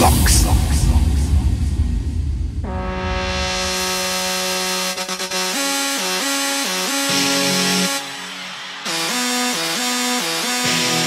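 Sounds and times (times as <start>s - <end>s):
thumping bass beat: 0.0s - 11.0s
sustained buzzy synthesizer note: 2.6s - 8.2s.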